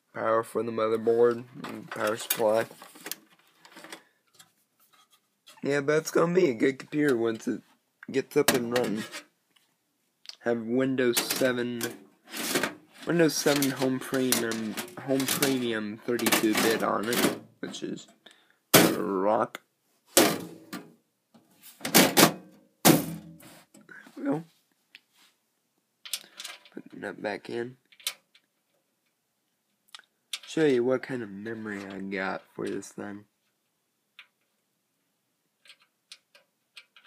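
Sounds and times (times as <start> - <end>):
faint clicks and rustles of cables: 1.3 - 5.6, 26.0 - 26.9, 27.8 - 30.8, 35.6 - 37.0.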